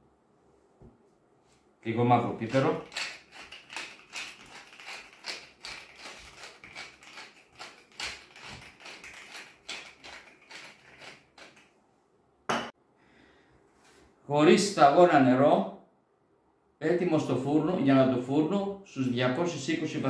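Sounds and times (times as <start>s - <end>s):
pepper mill grinding: 2.3s - 11.7s.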